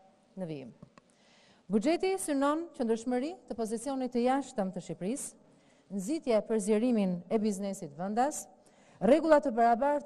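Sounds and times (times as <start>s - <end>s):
woman speaking into a microphone: 0.4s - 0.8s, 1.7s - 10.0s.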